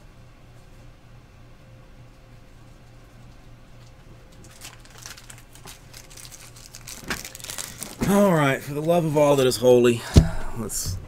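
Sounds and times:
steady low hum: 0.0 - 4.6, 7.6 - 11.0
rustling and crinkling: 2.6 - 9.6.

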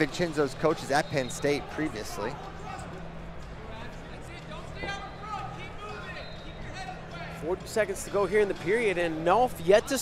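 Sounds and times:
background murmur: 0.0 - 10.0.

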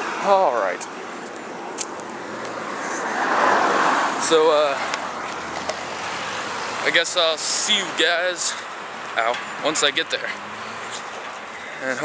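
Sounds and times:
car passing: 0.0 - 12.0.

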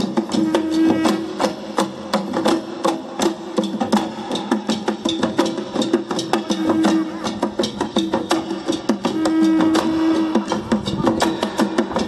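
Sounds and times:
hand-beaten long drums: 0.0 - 12.0.

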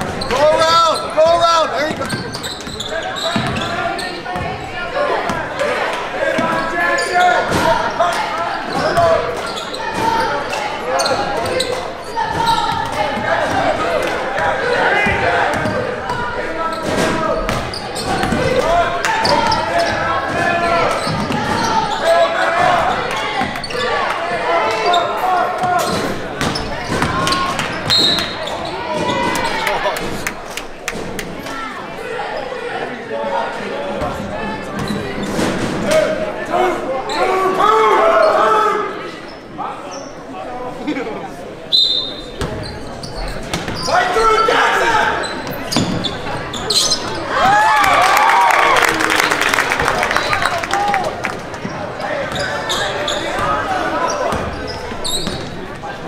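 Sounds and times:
people shouting and chattering: 0.0 - 56.0.

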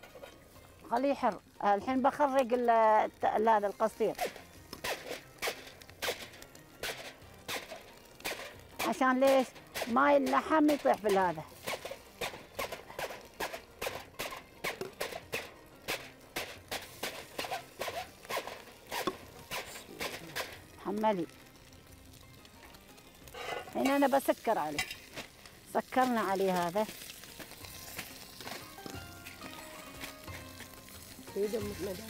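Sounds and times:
aluminium foil crinkling: 0.0 - 32.0.

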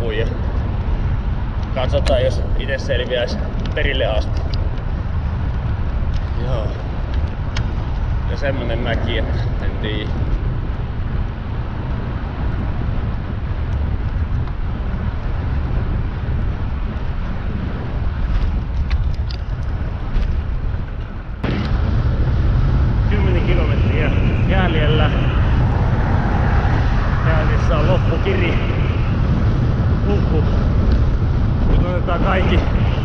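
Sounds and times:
tyres on asphalt: 0.0 - 33.0
wind on microphone: 0.0 - 33.0.

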